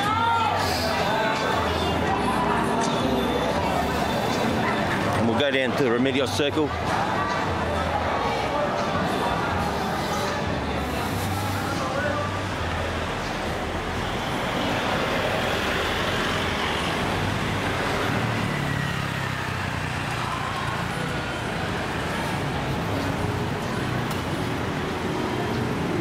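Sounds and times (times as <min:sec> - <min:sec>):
cars passing slowly: 0:00.0 - 0:26.0
road noise: 0:00.0 - 0:26.0.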